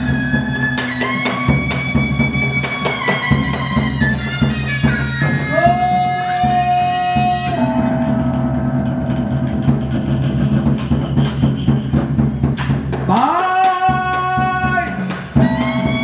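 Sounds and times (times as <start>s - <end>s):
drum and clapper strokes: 0.0s - 5.9s, 8.4s - 16.0s
sliding melody line: 0.0s - 12.0s, 15.4s - 16.0s
steady low drone tones: 7.6s - 12.9s.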